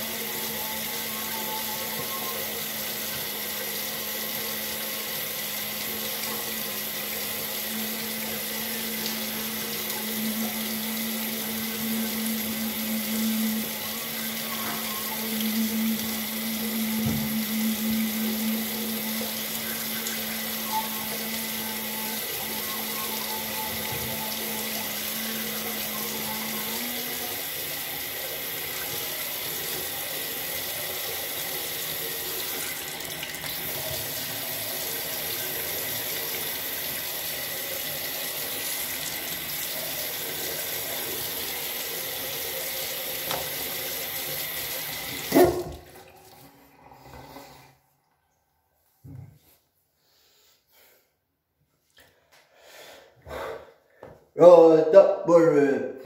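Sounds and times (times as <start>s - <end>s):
tap running into sink: 17.0s - 17.5s, 43.2s - 43.8s.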